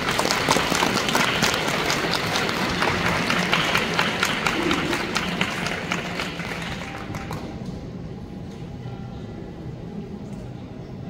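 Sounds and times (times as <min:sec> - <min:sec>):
audience applause: 0:00.0 - 0:07.8
low crowd murmur: 0:00.0 - 0:11.0.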